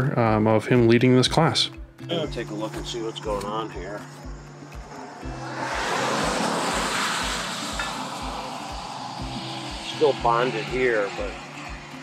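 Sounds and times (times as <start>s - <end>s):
background music with steady beat: 0.0s - 12.0s
car passing by: 3.1s - 12.0s.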